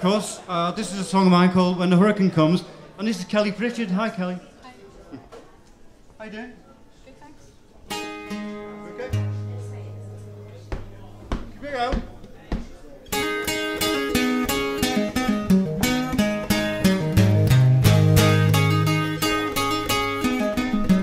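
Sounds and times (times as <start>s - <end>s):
acoustic guitar strumming: 7.9s - 11.6s, 13.1s - 21.0s.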